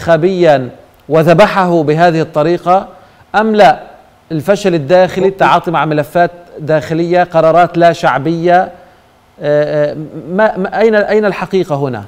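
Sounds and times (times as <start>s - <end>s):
man talking: 0.0s - 8.8s, 9.4s - 12.0s.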